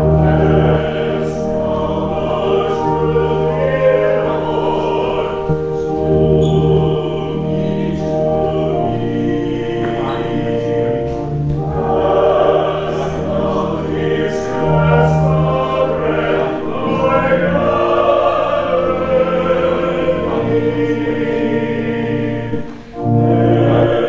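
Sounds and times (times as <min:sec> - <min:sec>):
choir singing: 0:00.0 - 0:24.0.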